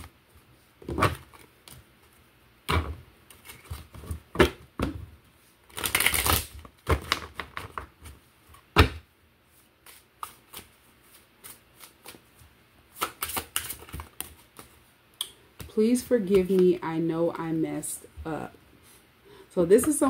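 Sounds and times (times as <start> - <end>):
cards shuffling: 9.7 - 14.9.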